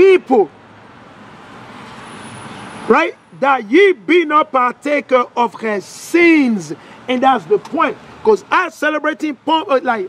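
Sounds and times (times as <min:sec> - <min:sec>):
car passing on road: 0:00.0 - 0:09.0.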